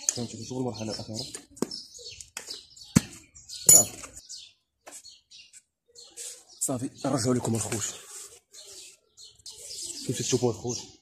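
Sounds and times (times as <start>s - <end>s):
faint high-pitched bird chirps: 0.0s - 11.0s.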